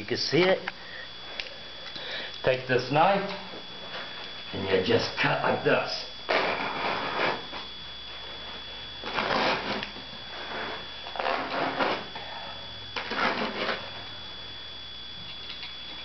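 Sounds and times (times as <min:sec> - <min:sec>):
knife sawing through carpet: 0:09.0 - 0:09.8, 0:10.5 - 0:12.1, 0:13.0 - 0:13.8.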